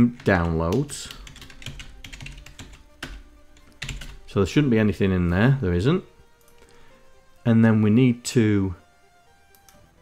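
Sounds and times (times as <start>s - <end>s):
keyboard keys clicking: 0.0s - 4.2s, 9.5s - 9.8s.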